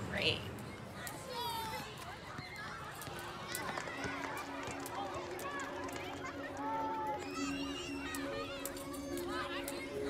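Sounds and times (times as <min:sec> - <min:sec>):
children calling and shouting: 0:00.5 - 0:10.0.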